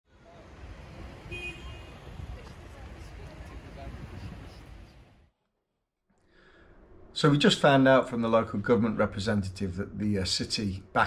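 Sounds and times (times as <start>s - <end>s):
passing vehicles rumble: 0.1s - 5.3s.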